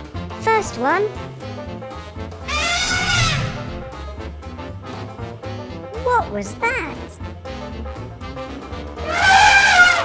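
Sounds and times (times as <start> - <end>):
background music: 0.0 - 10.0
animal call sound effect: 2.5 - 3.9.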